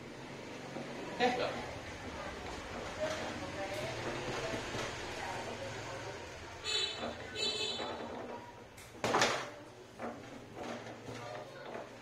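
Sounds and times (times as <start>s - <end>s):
foosball rods sliding and knocking: 7.0s - 12.0s.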